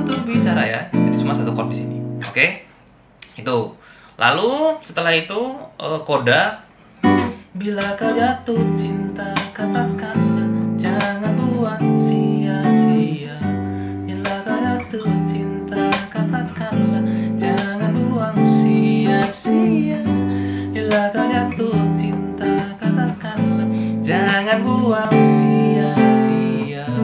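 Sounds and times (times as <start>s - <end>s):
nylon-string guitar fingerstyle chords: 0.0s - 2.4s, 7.0s - 27.0s.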